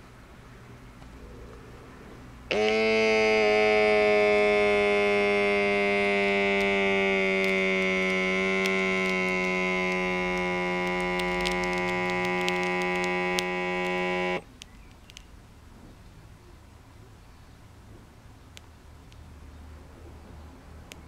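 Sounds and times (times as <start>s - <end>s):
inflation pump buzzing: 2.4s - 14.5s.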